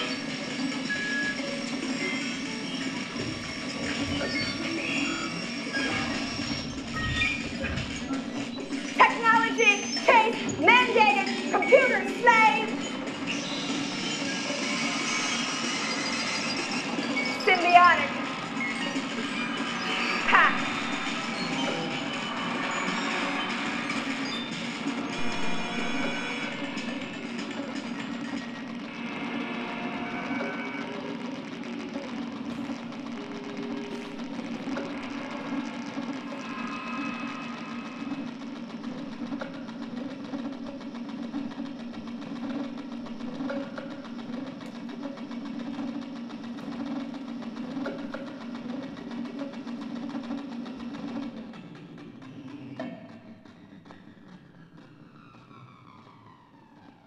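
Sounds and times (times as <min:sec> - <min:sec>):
clattering rhythm: 0:00.0 - 0:29.5, 0:30.2 - 0:57.0
glitchy electronic tones: 0:00.0 - 0:51.8
low buzzing drone: 0:12.2 - 0:57.0.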